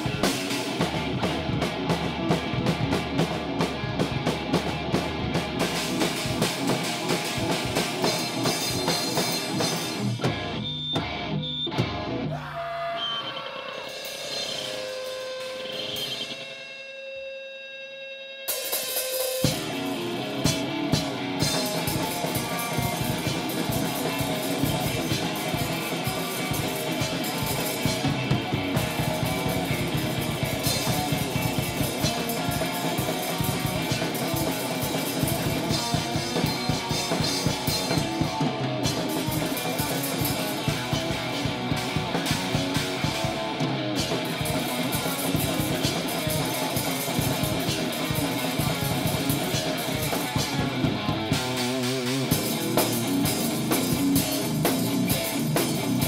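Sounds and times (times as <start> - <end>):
drum kit with cymbals and snare: 0.0 - 56.0
electric guitar: 0.0 - 56.0.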